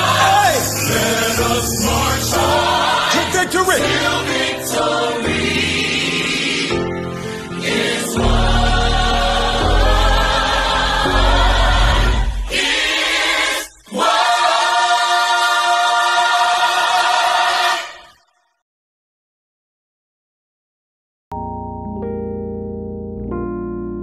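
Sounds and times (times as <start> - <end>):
choir singing gospel song: 0.0 - 18.3.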